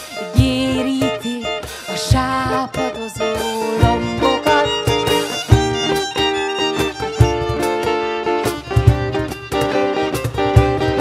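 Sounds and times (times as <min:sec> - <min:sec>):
acoustic guitar: 0:00.0 - 0:11.0
violin melody: 0:00.0 - 0:11.0.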